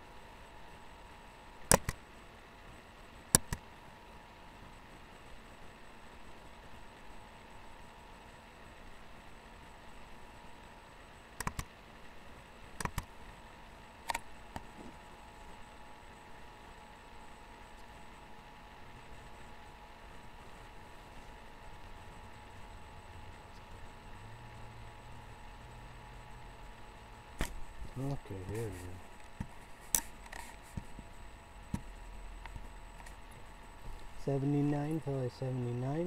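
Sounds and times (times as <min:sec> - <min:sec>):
faint steady hum: 0:00.0 - 0:36.0
computer mouse clicking: 0:01.7 - 0:02.0, 0:03.3 - 0:03.6, 0:11.4 - 0:11.7, 0:12.8 - 0:13.1.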